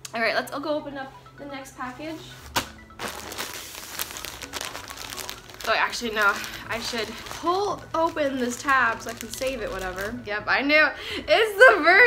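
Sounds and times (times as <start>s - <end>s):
plastic mailer crinkling: 2.5s - 10.2s.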